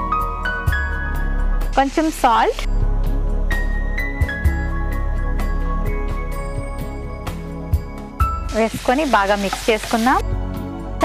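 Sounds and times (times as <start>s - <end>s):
spatula stirring: 8.5s - 10.2s
vegetables sizzling in a frying pan: 8.5s - 10.2s
background music with a voice: 8.5s - 11.0s.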